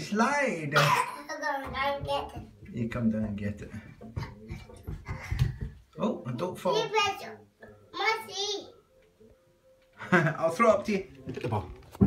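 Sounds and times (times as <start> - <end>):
toddler feet thumping on carpeted stairs: 1.6 - 5.9.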